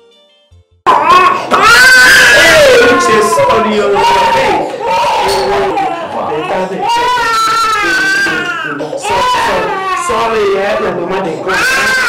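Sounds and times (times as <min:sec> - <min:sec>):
baby crying: 0:00.9 - 0:12.0
woman soothing: 0:04.6 - 0:07.1.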